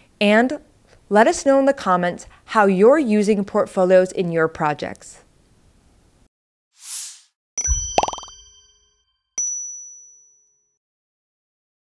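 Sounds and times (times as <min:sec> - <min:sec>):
whoosh: 0:06.8 - 0:07.3
bell-like chime: 0:07.6 - 0:10.7.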